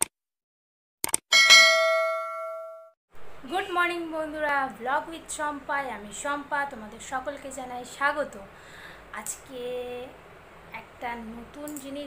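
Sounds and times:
bright bell chime: 1.3 - 2.9.

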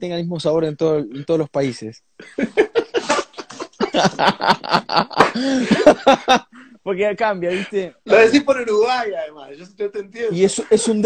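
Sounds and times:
men laughing: 2.2 - 6.8.

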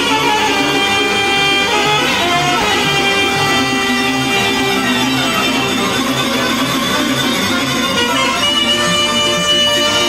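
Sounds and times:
folk dance music: 0.0 - 10.0
pulsing bass: 0.0 - 10.0
saxophone lead: 0.0 - 10.0.

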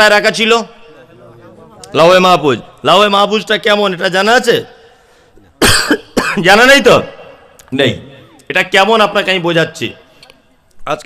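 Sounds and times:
man coughing: 5.6 - 6.5.

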